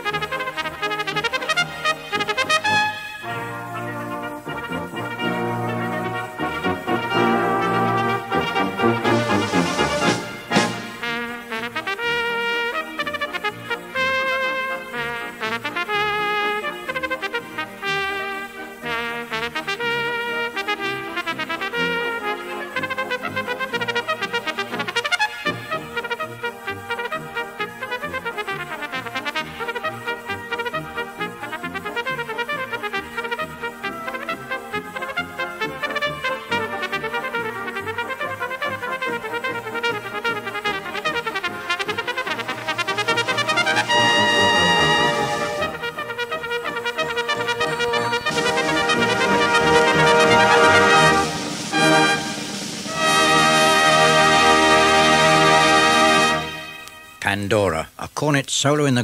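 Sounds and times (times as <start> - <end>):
brass band chords: 0.0 - 57.4
solo cornet melody: 0.0 - 57.4.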